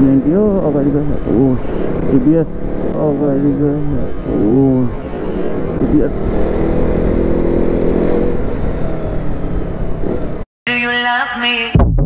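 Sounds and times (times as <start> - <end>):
wind and road noise: 0.0 - 10.5
music: 11.2 - 12.0.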